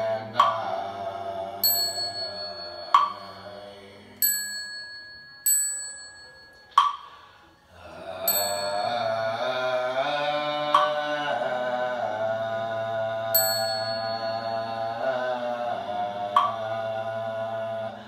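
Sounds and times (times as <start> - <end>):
group chanting: 0.0 - 4.7, 6.9 - 18.0
struck bells ringing: 1.6 - 7.6, 8.2 - 9.7, 13.4 - 15.4.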